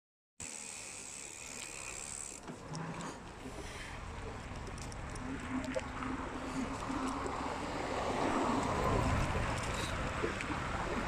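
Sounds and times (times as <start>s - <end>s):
bicycle road noise: 0.4s - 11.0s
wind on microphone: 3.5s - 11.0s.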